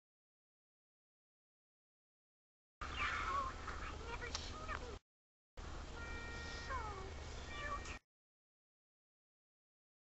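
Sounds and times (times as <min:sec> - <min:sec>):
held music notes: 0:05.9 - 0:08.0
cartoon voice meow-like cry: 0:07.6 - 0:08.0.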